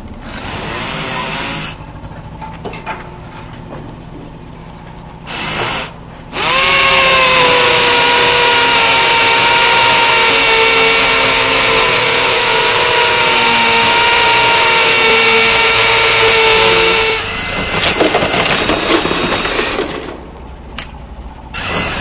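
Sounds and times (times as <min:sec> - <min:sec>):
electric power drill running: 0:05.3 - 0:19.9, 0:21.6 - 0:22.0.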